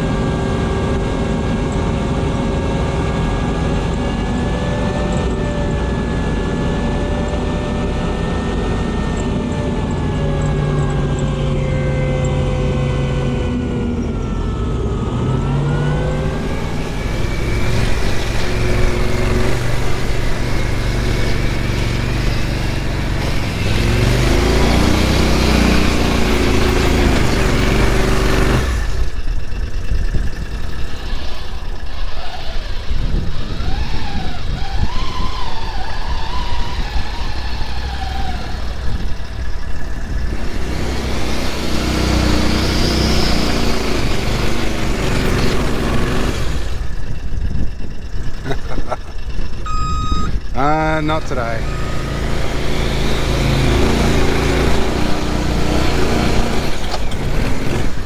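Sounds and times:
heavy wind noise: 0:00.0 - 0:58.0
vehicle engine running: 0:00.0 - 0:58.0.

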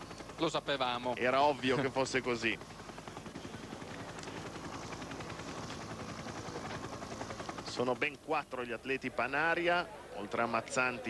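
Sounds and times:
helicopter rotor chop: 0:00.0 - 0:11.0.

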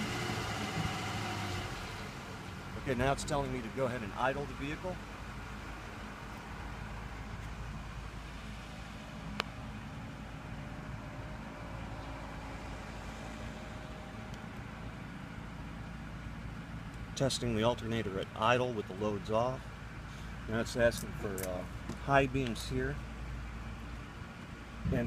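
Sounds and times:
truck engine idling: 0:00.0 - 0:25.0.

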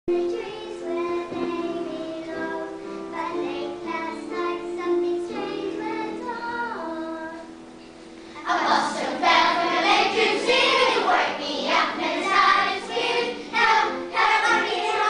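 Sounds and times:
young children singing: 0:00.1 - 0:15.0.

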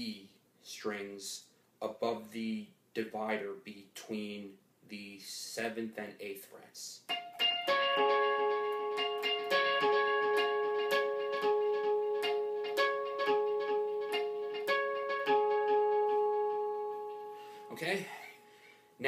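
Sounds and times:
electric guitar harmonics: 0:07.1 - 0:17.6.

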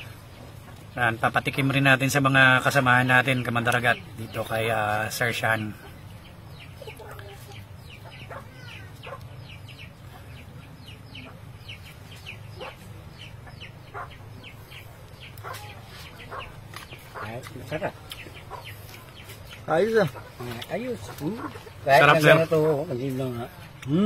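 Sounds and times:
chicks peeping: 0:00.0 - 0:23.9
chickens clucking: 0:00.0 - 0:24.0
steady low hum: 0:00.0 - 0:24.0.

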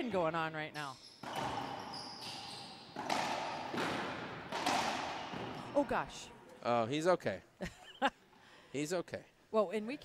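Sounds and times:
thin high squeak: 0:00.8 - 0:03.1
ball striking racquets and walls: 0:01.0 - 0:06.0.

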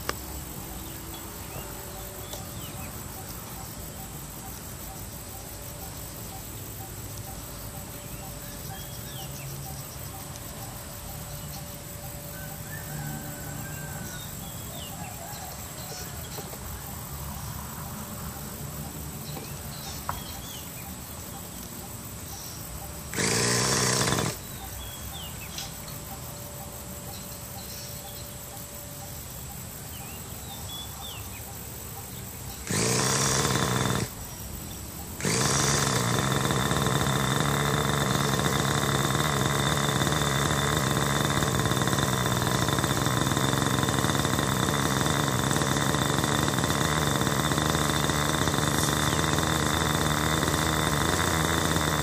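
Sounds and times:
electric starter buzzing: 0:00.0 - 0:52.0
model helicopter engine idling: 0:00.0 - 0:52.0
steady high whine: 0:00.0 - 0:52.0.

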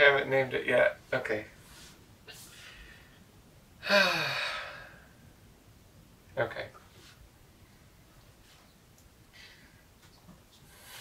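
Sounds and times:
man sighing: 0:03.8 - 0:05.1.

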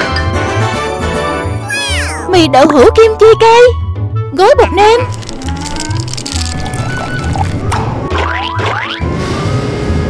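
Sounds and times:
upbeat background music: 0:00.0 - 0:09.2.

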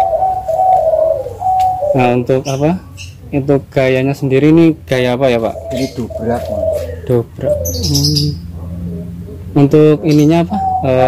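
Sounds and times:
dove cooing: 0:00.0 - 0:11.0.

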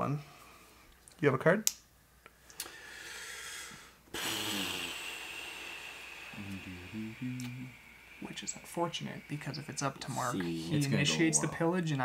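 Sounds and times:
person breathing in and sighing: 0:02.6 - 0:10.7
low murmurs: 0:06.1 - 0:11.5.

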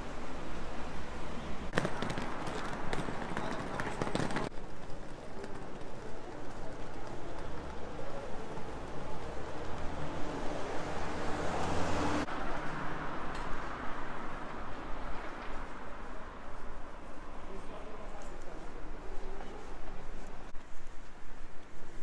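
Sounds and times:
low traffic rumble: 0:00.0 - 0:22.0
vehicle passing: 0:08.7 - 0:16.6.

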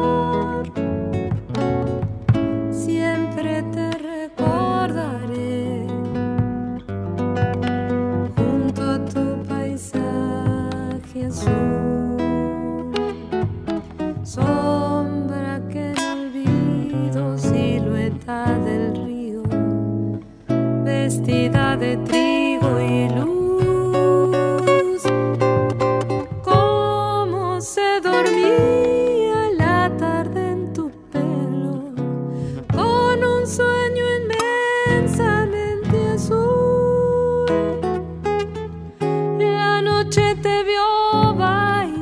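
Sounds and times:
acoustic guitar: 0:00.0 - 0:42.0.

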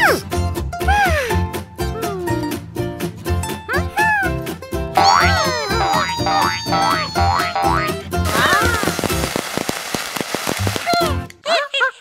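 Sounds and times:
upbeat cartoon music: 0:00.0 - 0:09.4
high squeaky sliding sounds: 0:05.2 - 0:07.6.

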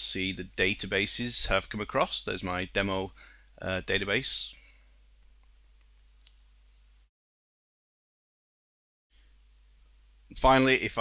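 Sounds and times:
faint low hum: 0:00.0 - 0:07.1.

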